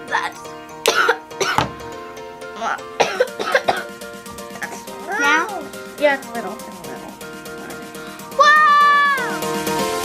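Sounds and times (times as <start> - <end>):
boy coughing: 0.9 - 1.7, 2.6 - 3.9, 4.6 - 5.0.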